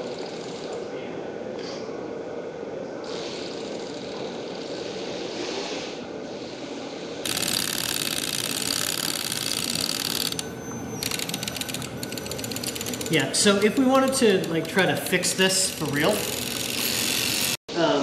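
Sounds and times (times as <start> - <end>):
cordless drill running: 7.3 - 17.6
rapid clicking: 7.3 - 17.6.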